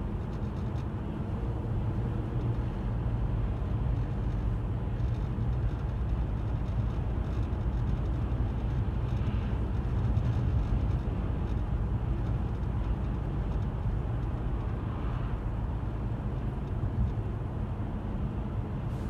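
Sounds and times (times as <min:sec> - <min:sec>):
car tyre and road noise: 0:00.0 - 0:19.0.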